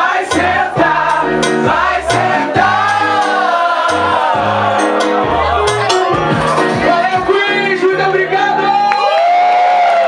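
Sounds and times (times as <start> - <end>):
pop music: 0.0 - 9.2
crowd cheering and whooping: 8.5 - 10.0.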